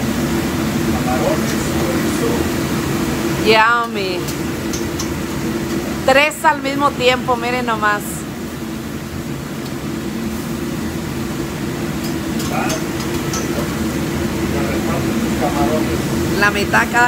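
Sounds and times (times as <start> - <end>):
kitchen equipment drone: 0.0 - 17.0.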